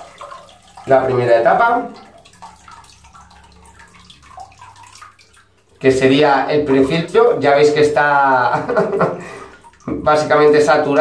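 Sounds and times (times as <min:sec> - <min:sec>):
water dripping: 0:00.0 - 0:11.0.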